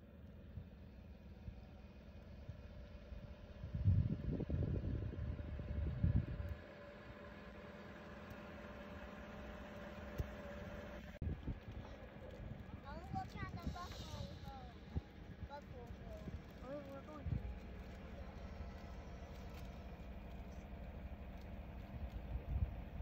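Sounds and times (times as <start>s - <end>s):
steady low hum: 0.0s - 23.0s
wind buffeting microphone: 3.4s - 6.6s, 11.2s - 18.2s.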